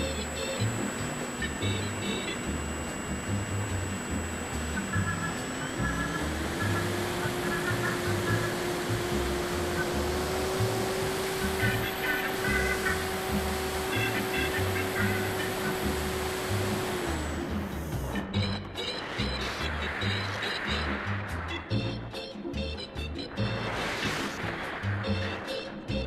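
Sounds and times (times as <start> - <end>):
electric motor and propeller whine: 0.0 - 18.6
background music with steady beat: 0.0 - 26.0.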